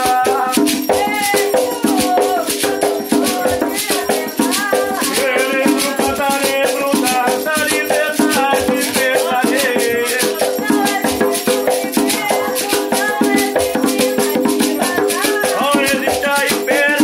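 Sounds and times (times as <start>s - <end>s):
hand drum: 0.0s - 17.0s
person singing: 0.0s - 17.0s
shaker rattle: 0.0s - 17.0s.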